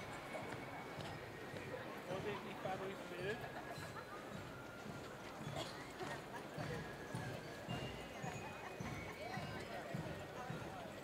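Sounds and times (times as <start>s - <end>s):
marching footsteps on cobblestones: 0.0s - 11.0s.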